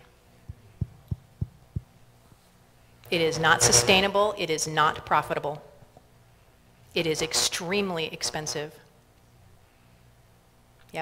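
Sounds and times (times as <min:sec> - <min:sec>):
soft low thumps: 0:00.4 - 0:02.0.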